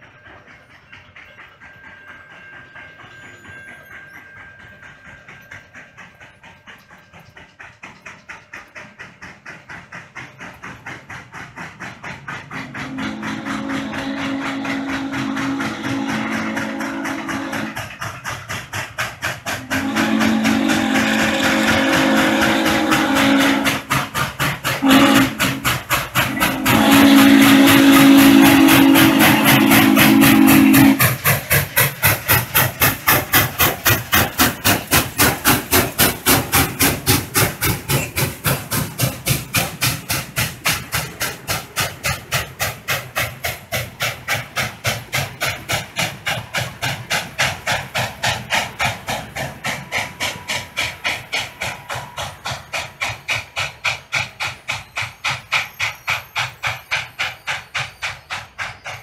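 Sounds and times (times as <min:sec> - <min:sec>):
crossing bell clanging: 0:00.0 - 0:08.3
steam locomotive whistle: 0:12.4 - 0:18.0, 0:19.6 - 0:33.8.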